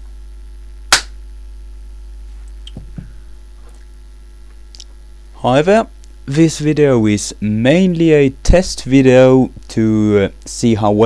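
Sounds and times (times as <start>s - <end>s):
low mains hum: 0.0s - 11.0s
sharp hand clap: 0.9s - 1.2s.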